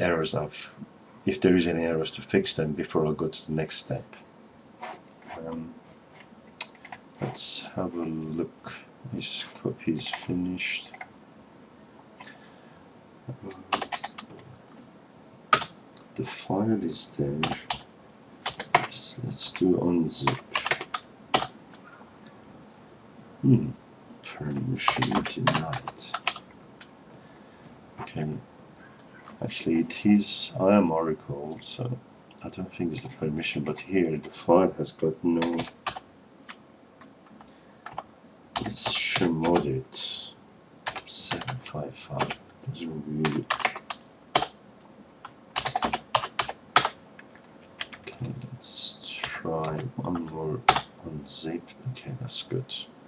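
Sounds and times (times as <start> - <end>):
typing on computer keyboard: 13.7 - 14.3, 15.5 - 15.7, 17.4 - 17.8, 18.4 - 19.0, 20.3 - 21.8, 24.9 - 26.5, 35.4 - 36.6, 40.9 - 41.6, 43.2 - 44.6, 45.6 - 48.1, 50.2 - 50.9.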